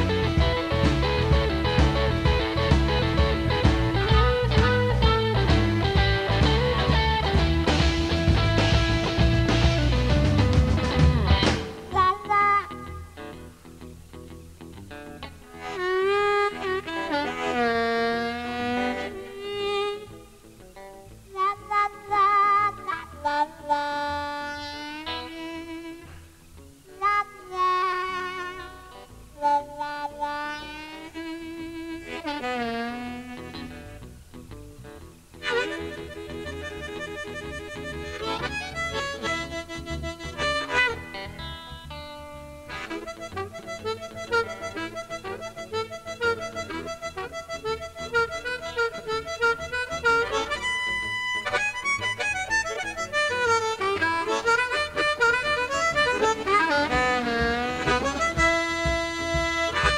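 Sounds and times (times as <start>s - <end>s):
bass and drums: 0.0s - 12.3s, 33.6s - 59.9s
blues harmonica solo: 0.0s - 59.9s
electric guitar: 0.0s - 59.9s.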